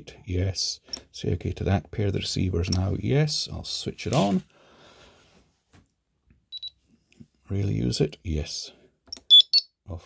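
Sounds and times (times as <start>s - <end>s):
radio transmitter high beeps: 9.2s - 9.7s.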